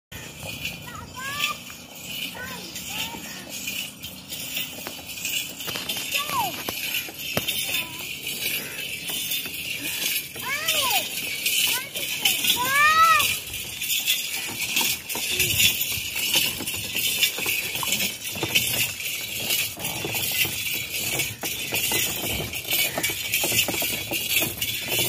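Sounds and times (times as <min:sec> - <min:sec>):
camel bells jingling: 0:00.1 - 0:25.0
wooden cart rolling: 0:00.2 - 0:25.0.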